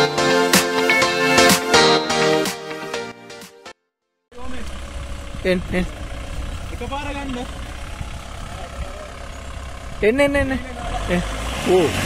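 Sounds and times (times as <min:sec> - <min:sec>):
low vehicle engine rumble: 0:04.3 - 0:12.0.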